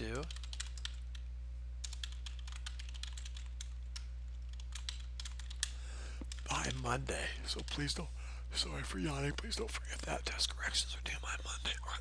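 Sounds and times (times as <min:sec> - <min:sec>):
steady low hum: 0:00.0 - 0:12.0
keyboard typing clicks: 0:00.2 - 0:06.5.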